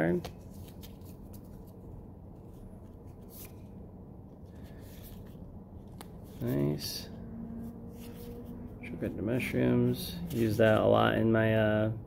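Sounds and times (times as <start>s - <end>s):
low room hum: 0.0s - 12.0s
trading cards sliding and flicking: 0.1s - 1.8s, 2.6s - 3.7s.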